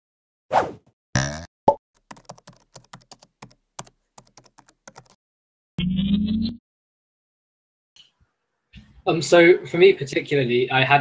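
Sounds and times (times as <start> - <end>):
rapid keyboard typing clicks: 2.0 - 5.2.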